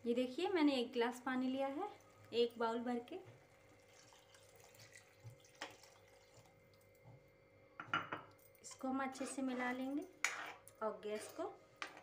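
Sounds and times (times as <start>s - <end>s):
water pouring into a pan: 3.4s - 6.9s.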